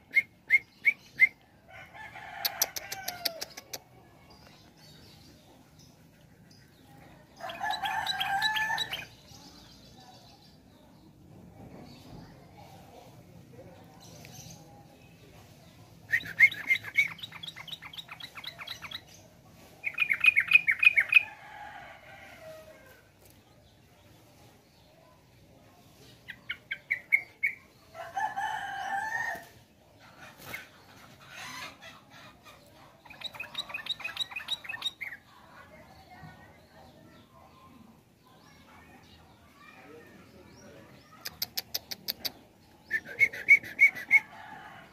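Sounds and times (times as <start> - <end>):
rooster crowing: 7.5 - 9.0.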